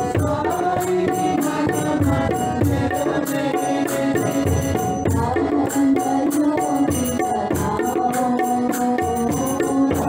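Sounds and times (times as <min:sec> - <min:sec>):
tabla beat: 0:00.0 - 0:10.0.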